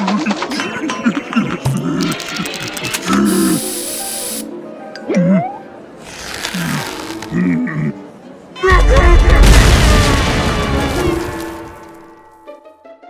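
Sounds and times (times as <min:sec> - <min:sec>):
spray can rattling: 0:02.1 - 0:04.4
spray can hissing: 0:03.2 - 0:04.5
cartoon music: 0:05.0 - 0:05.9.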